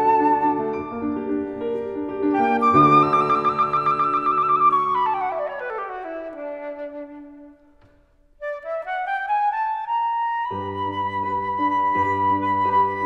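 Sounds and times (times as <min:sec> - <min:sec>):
flute playing: 0:00.0 - 0:13.0
piano playing: 0:00.0 - 0:13.0.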